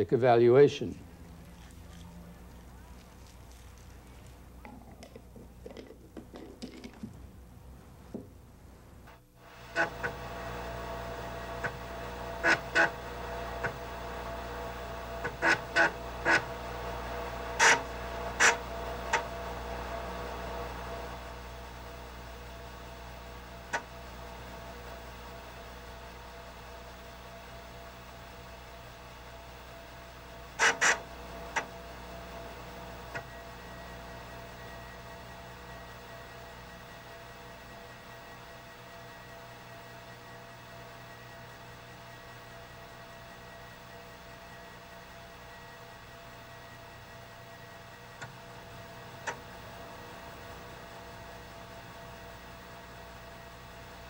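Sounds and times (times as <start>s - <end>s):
faint high whine: 8.7s - 54.0s
computer electronic hum: 9.0s - 54.0s.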